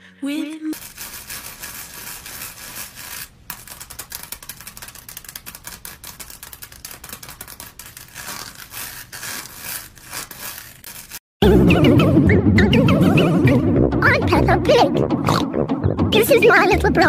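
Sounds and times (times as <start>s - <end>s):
mask peeling with crackling: 0.8s - 11.2s.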